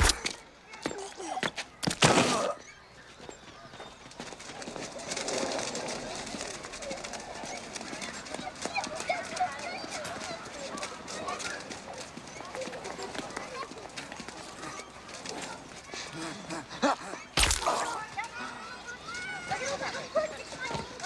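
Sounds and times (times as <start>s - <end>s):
indistinct background chatter: 0.0s - 21.0s.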